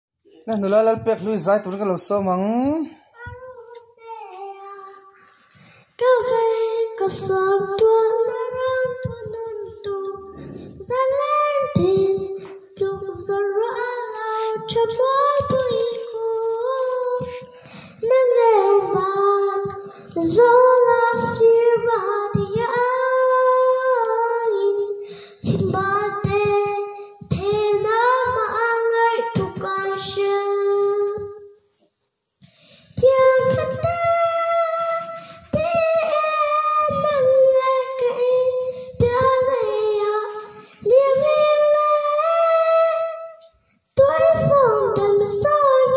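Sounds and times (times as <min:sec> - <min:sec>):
girl singing into microphone: 0:02.8 - 0:31.6, 0:32.5 - 0:45.9.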